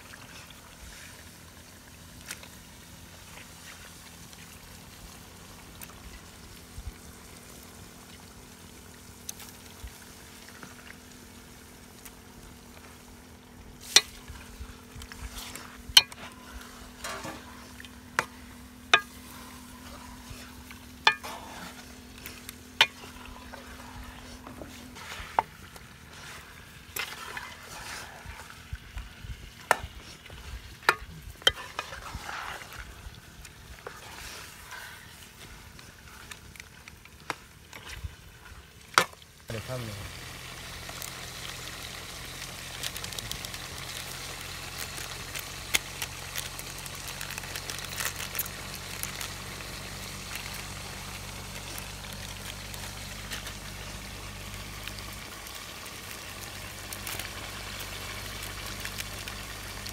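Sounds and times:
low sizzle: 0.0s - 59.9s
steady low hum: 0.3s - 38.8s.

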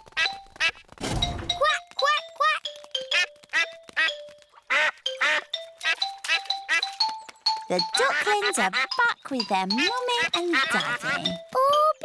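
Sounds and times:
light background music: 0.0s - 12.0s
cartoon duck quacking: 8.0s - 11.9s.

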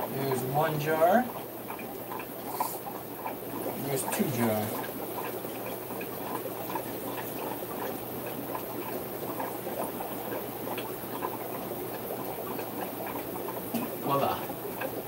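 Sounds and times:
low steady hum: 0.0s - 15.0s
water trickling from siphon hose: 0.0s - 15.0s.

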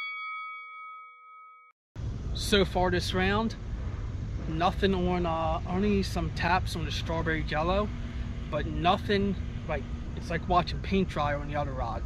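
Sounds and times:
bell-like ding: 0.0s - 1.8s.

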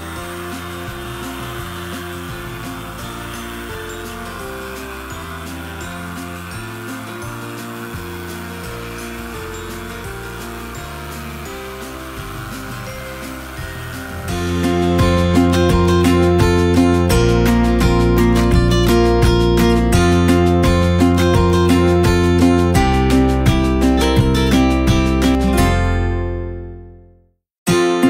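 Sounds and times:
electric sander whirring: 0.0s - 25.5s.

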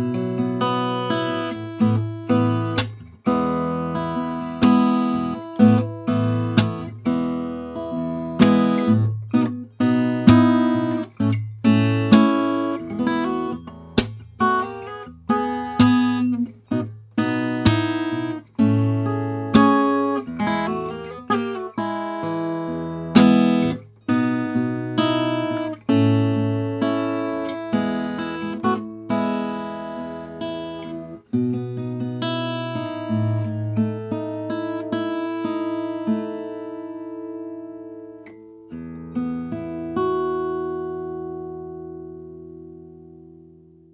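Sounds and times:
acoustic guitar chords strummed: 0.0s - 43.9s.

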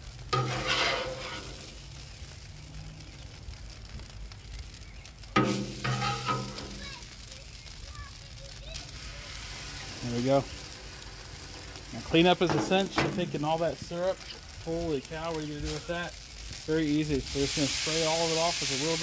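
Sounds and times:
butter sizzling on griddle: 0.0s - 19.0s
metal spatula scraping griddle: 0.3s - 1.8s, 5.4s - 6.8s, 12.3s - 13.4s.

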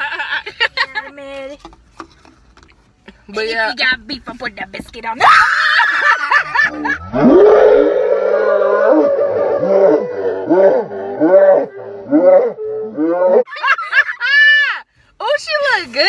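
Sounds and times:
women laughing: 0.0s - 1.2s, 5.2s - 7.2s, 13.4s - 14.8s
women screaming: 5.2s - 10.5s, 14.2s - 14.8s.

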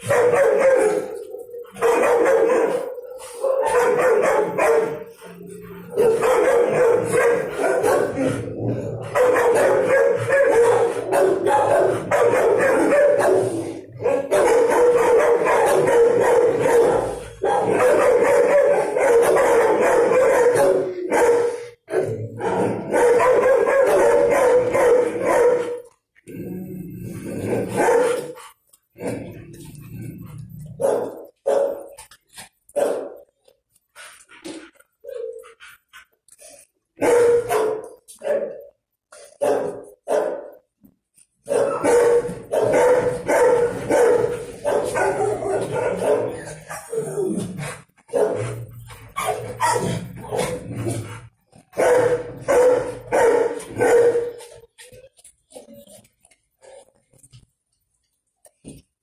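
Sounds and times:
dog barking: 0.0s - 5.1s, 5.9s - 8.4s, 9.0s - 25.9s, 27.8s - 28.4s, 30.8s - 32.0s, 32.8s - 33.2s, 37.0s - 38.7s, 39.4s - 40.6s, 41.4s - 46.9s, 48.1s - 48.6s, 49.2s - 50.6s, 51.7s - 54.6s.

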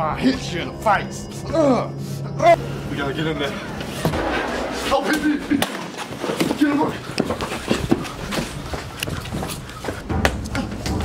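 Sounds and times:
men's voices: 0.0s - 8.2s
footsteps: 3.8s - 10.0s.

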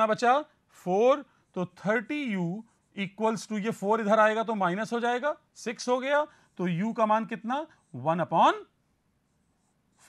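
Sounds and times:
man speaking: 0.0s - 8.8s.

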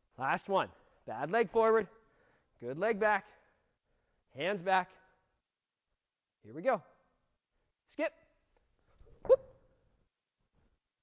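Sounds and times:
man whooping: 9.2s - 9.6s.

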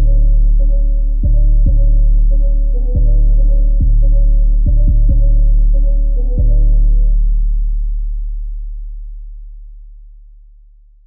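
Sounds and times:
deep sub-bass note: 0.0s - 11.0s.

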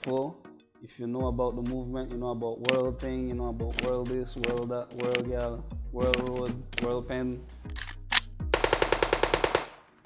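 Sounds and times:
machine-gun firing: 8.5s - 9.9s.

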